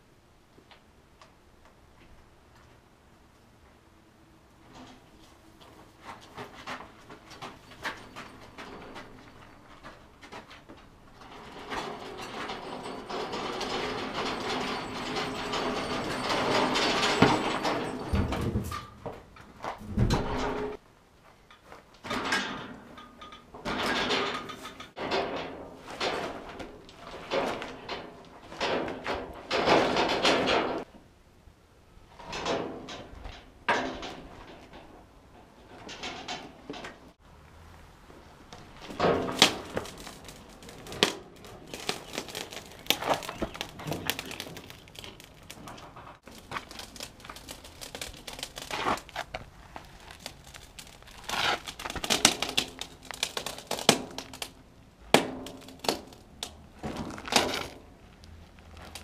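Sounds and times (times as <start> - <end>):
metal clanks and knocks: 6.3 - 20.8, 21.5 - 30.9, 32.2 - 37.2, 38.6 - 57.9
metal scraping: 11.1 - 20.8, 38.7 - 54.5.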